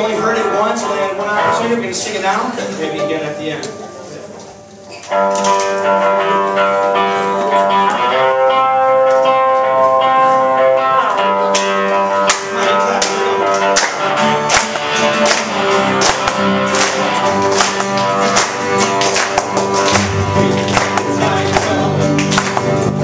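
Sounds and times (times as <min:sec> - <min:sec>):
guitar and keyboard chords: 0:00.0 - 0:23.0
drums steady beat: 0:12.4 - 0:23.0.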